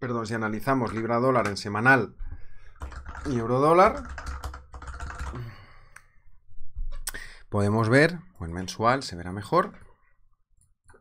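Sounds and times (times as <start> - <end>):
keyboard keys clicking: 2.8 - 5.4.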